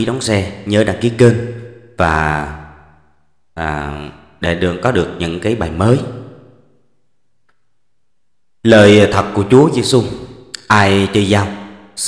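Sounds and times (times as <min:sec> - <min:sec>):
man's voice: 0:00.0 - 0:02.6, 0:03.6 - 0:06.2, 0:08.6 - 0:11.6.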